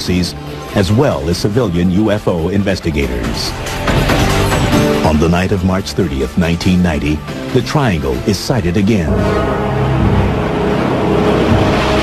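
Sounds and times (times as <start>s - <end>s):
jet engine noise: 9.1s - 12.0s.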